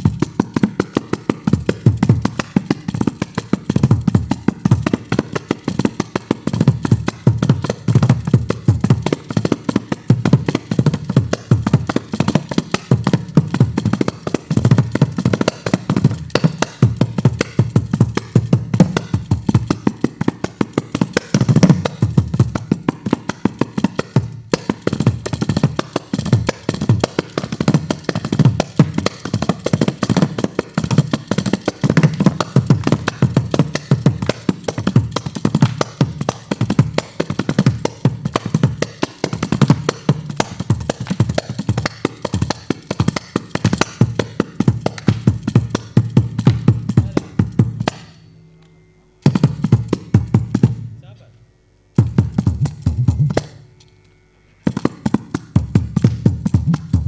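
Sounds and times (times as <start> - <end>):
frame drum with jingles: 0.0 - 48.4, 49.2 - 50.9, 52.0 - 53.7, 54.6 - 57.0.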